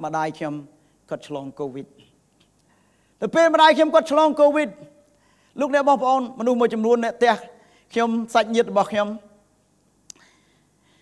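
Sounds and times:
man speaking into a microphone: 0:00.0 - 0:02.2, 0:03.2 - 0:09.4.

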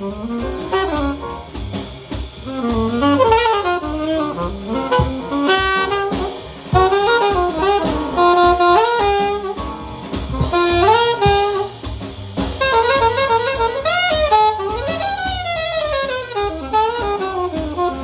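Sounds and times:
alto saxophone playing jazz blues: 0:00.0 - 0:18.0
drums: 0:00.0 - 0:18.0.

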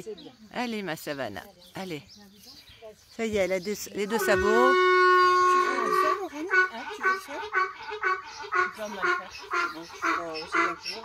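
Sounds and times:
donkey braying: 0:04.0 - 0:11.0.

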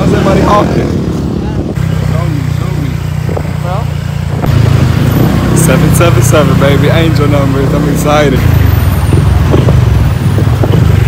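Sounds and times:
motorcycle engine and road rumble: 0:00.0 - 0:11.0.

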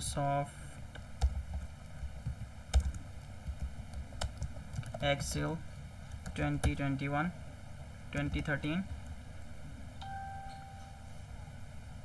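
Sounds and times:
computer keyboard keystrokes: 0:01.0 - 0:05.1.

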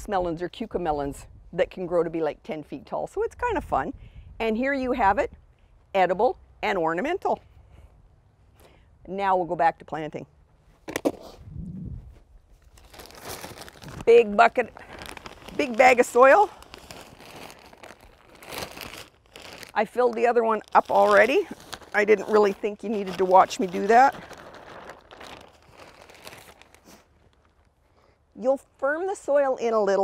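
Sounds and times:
plastic bag crinkling: 0:12.6 - 0:27.8.

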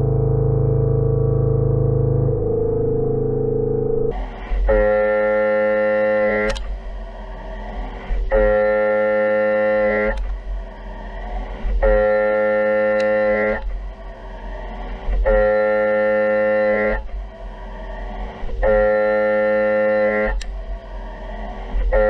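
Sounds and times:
low machine hum: 0:00.0 - 0:22.0
milling cutter whine: 0:02.2 - 0:22.0.

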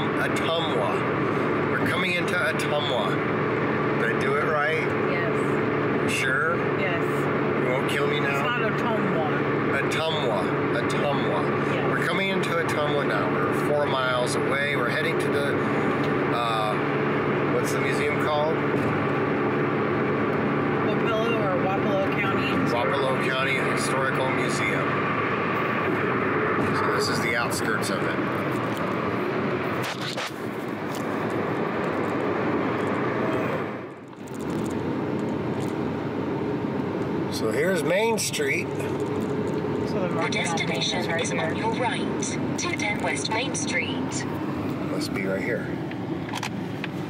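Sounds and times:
car engine droning: 0:00.0 - 0:47.0
road noise: 0:00.0 - 0:47.0
person talking: 0:40.0 - 0:44.2.

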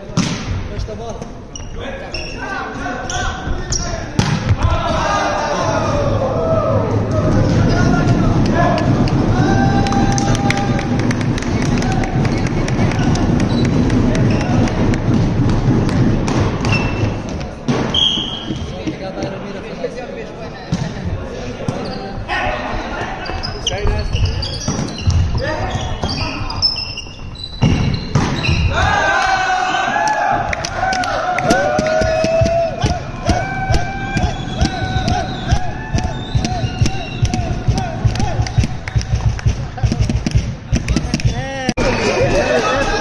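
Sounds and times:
shoes squeaking: 0:01.1 - 0:04.2, 0:16.6 - 0:19.4, 0:23.0 - 0:28.7, 0:34.2 - 0:39.1
people shouting: 0:04.6 - 0:11.1, 0:28.7 - 0:38.5.

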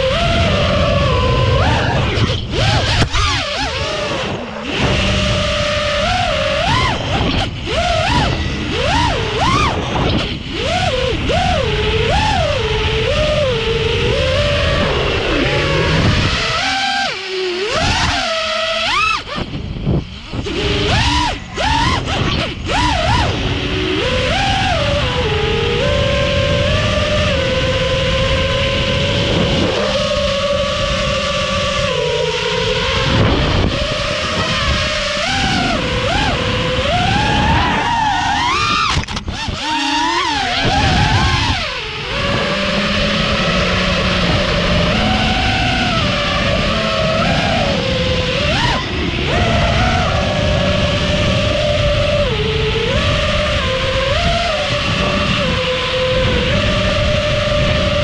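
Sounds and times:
drone motors whining: 0:00.0 - 0:58.0
wind rush over camera: 0:00.0 - 0:58.0.

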